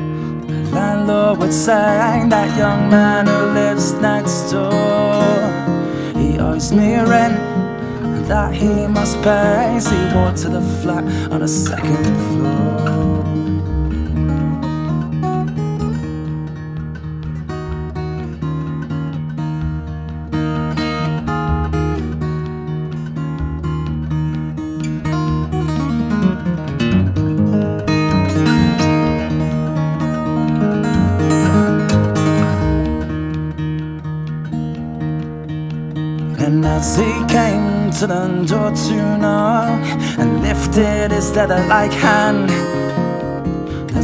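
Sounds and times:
solo acoustic guitar: 0.0s - 44.0s.

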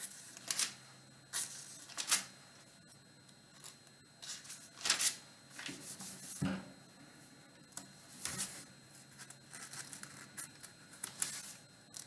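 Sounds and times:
paper pages rustling: 4.5s - 6.1s, 9.2s - 12.0s
page flapping: 4.8s - 5.2s.

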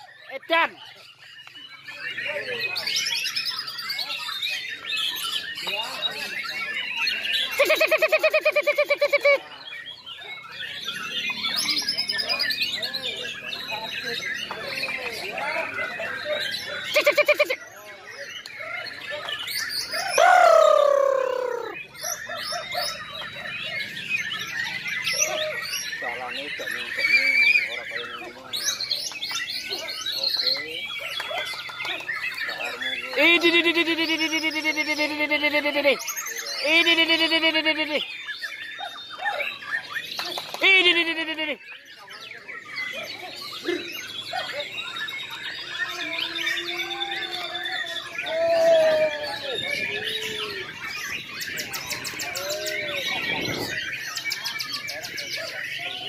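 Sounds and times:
birds singing: 0.0s - 56.0s
person shouting: 20.2s - 21.7s.

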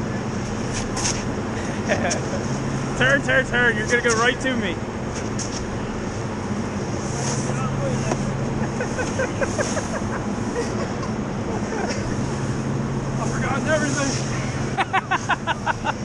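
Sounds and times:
snowboards scraping over snow: 8.8s - 10.2s.

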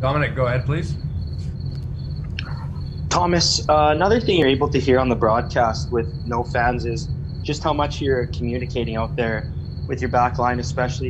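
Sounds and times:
high-pitched pulsing whine: 0.0s - 11.0s
low electrical hum: 0.0s - 11.0s.

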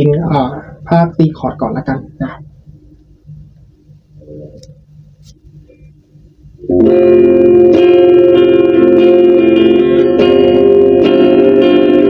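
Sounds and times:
clean electric guitar chord strummed: 6.6s - 12.0s.

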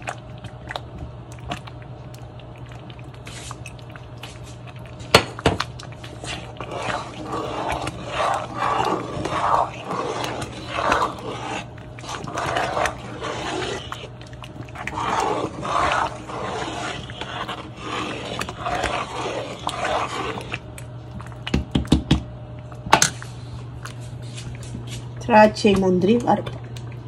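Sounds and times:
steady low hum: 0.0s - 27.0s
thick food bubbling and plopping: 0.0s - 27.0s
metal spoon stirring: 6.0s - 20.6s.

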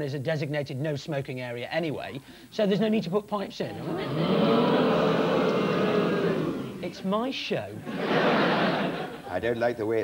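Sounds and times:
audience laughing and applauding: 3.8s - 6.9s, 7.8s - 9.4s
man talking: 9.2s - 10.0s.

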